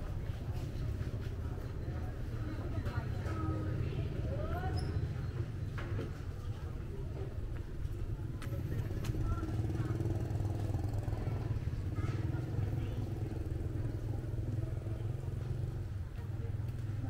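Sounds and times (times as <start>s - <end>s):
faint voices: 0.0s - 17.0s
motorcycle engine rumbling: 7.0s - 17.0s.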